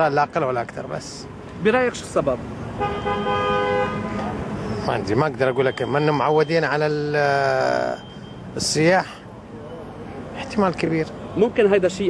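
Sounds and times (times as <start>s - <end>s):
faint traffic: 0.0s - 12.0s
two-tone car horn: 2.8s - 4.2s.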